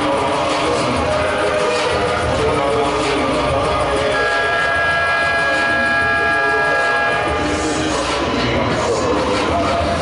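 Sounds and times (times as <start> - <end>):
loud horn-like tone: 4.0 - 8.0.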